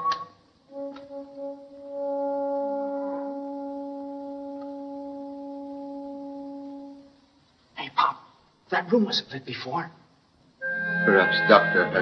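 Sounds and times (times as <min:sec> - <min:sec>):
held brass note: 0:00.1 - 0:07.2.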